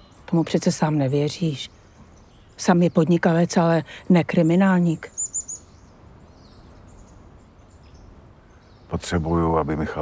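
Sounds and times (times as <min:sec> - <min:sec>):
faint low background rumble: 0:00.0 - 0:10.0
small bird chirping: 0:00.0 - 0:10.0.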